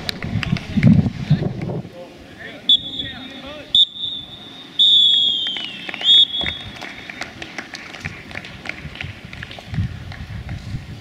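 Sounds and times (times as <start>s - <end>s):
referee's whistle blasts: 2.7s - 6.8s.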